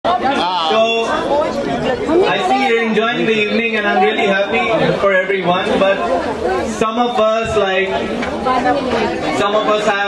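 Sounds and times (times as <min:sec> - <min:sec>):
guests chattering: 0:00.0 - 0:10.0
man speaking over sound system: 0:02.2 - 0:06.1, 0:06.7 - 0:08.0, 0:09.3 - 0:10.0.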